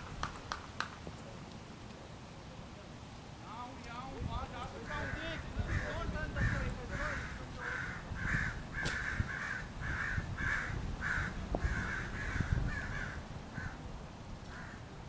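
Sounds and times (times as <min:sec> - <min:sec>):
bird cawing: 0:04.9 - 0:13.8, 0:14.4 - 0:14.9.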